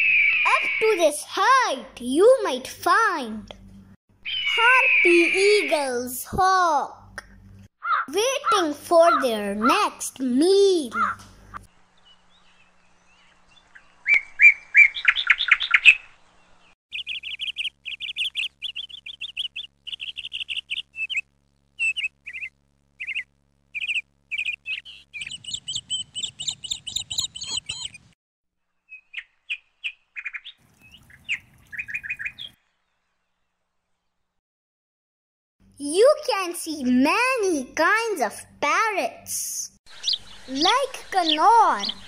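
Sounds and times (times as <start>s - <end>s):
bird chirping rapidly: 4.2s - 5.8s, 10.9s - 28.2s, 28.8s - 32.6s, 39.9s - 42.0s.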